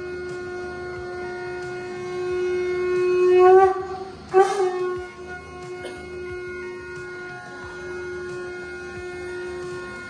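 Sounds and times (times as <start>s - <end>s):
conch shell blown: 0.0s - 10.0s.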